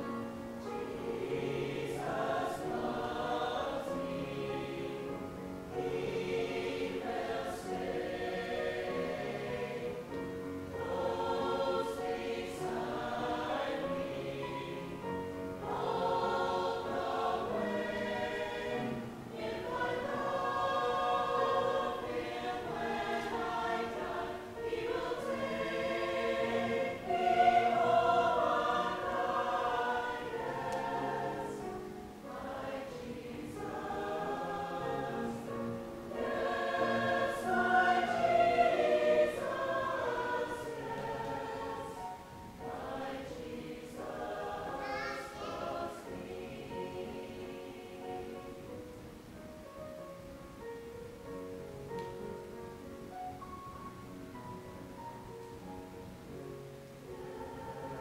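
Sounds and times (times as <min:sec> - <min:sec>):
church choir singing: 0:00.0 - 0:58.0.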